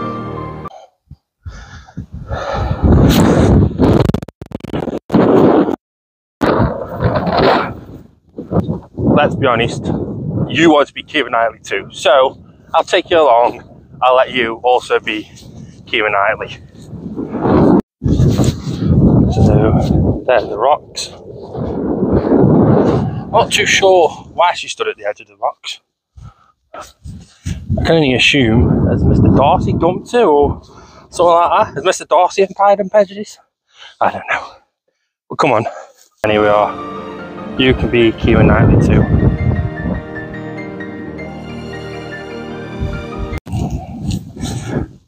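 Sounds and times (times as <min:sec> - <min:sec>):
wind buffeting microphone: 0:01.0 - 0:04.1, 0:06.4 - 0:24.7, 0:26.1 - 0:32.0, 0:37.7 - 0:40.3, 0:42.7 - 0:45.0.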